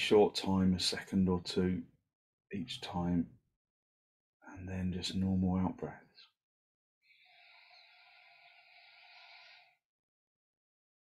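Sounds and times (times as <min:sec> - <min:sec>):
man breathing through nose: 0:07.1 - 0:09.8.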